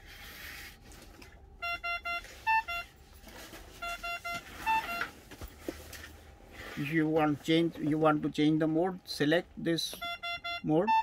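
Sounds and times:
ventilator alarm beeping: 1.6s - 5.2s, 9.8s - 11.0s.

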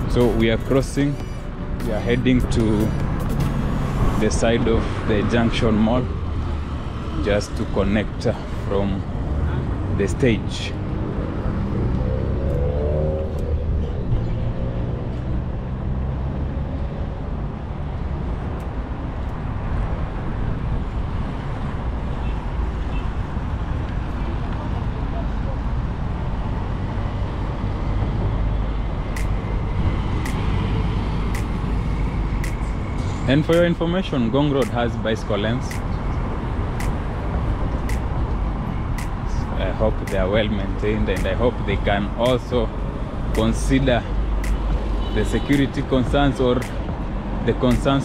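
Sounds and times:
vehicles passing: 0.0s - 48.0s.

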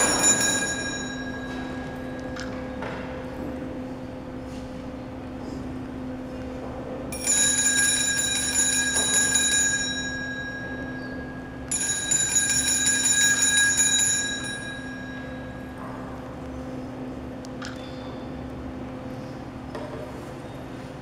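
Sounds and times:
altar bells ringing: 0.0s - 2.9s, 7.1s - 15.9s.

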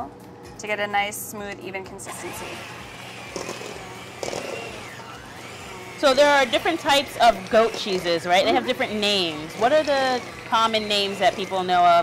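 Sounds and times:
electric hand mixer running: 2.0s - 12.0s.

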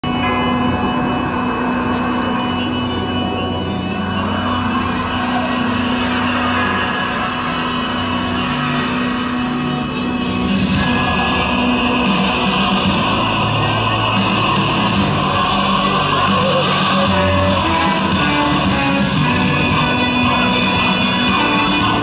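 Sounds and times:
parade music: 0.0s - 22.0s.

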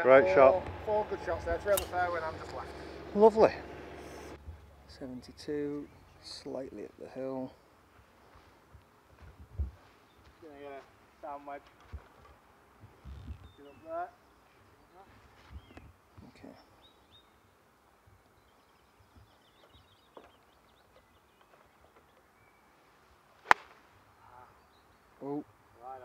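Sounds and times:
faint birdsong: 0.0s - 26.0s
golf club striking ball: 1.6s - 2.2s, 23.4s - 23.8s.

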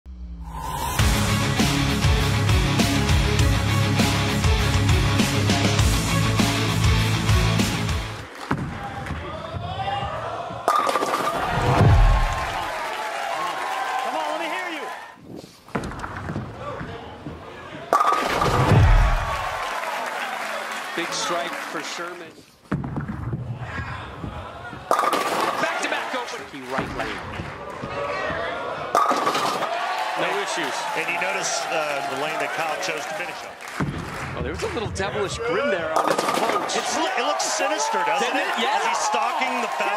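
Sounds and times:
bowling ball crashing into pins: 10.6s - 12.6s, 17.9s - 19.6s, 24.9s - 25.8s, 28.9s - 29.8s, 36.0s - 36.8s
crowd voices: 23.5s - 33.6s
bowling pins crashing and clattering: 36.0s - 36.8s.

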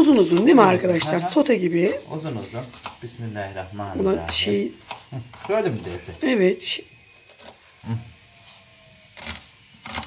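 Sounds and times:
knife slicing onion: 0.0s - 6.1s, 7.1s - 8.1s, 9.1s - 10.0s.

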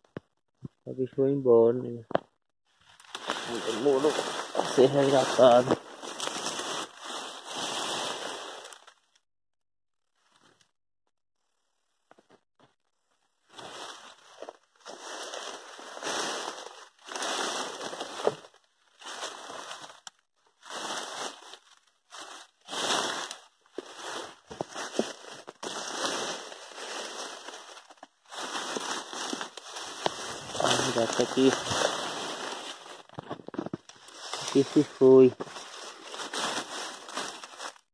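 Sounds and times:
leaves and stems rustling: 2.8s - 9.0s, 13.5s - 37.9s.

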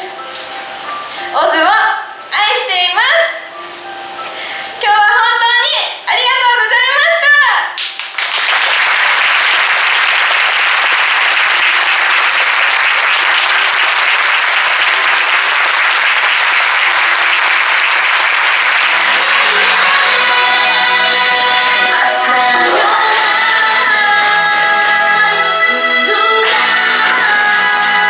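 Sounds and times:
audience applause: 7.8s - 24.0s
pop song backing music: 18.8s - 28.0s.

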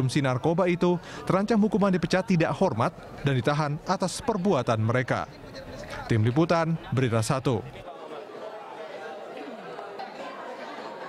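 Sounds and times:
many people talking: 0.0s - 11.0s.

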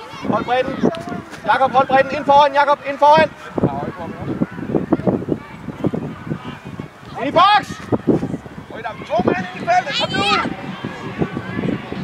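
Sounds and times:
loud high-pitched shout: 9.8s - 10.5s.

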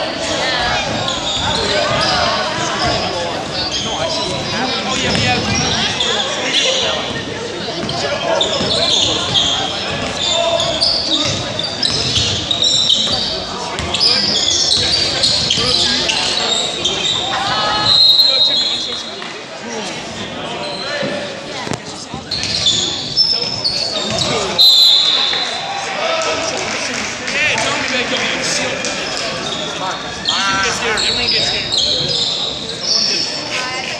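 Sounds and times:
voices calling out: 0.2s - 33.9s
sneakers squeaking on gym floor: 0.5s - 19.1s, 20.5s - 25.6s, 28.2s - 33.8s.

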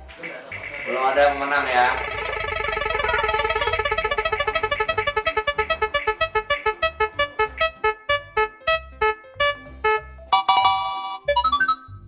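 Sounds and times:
spinning wheel electronic ticks: 0.3s - 11.7s.

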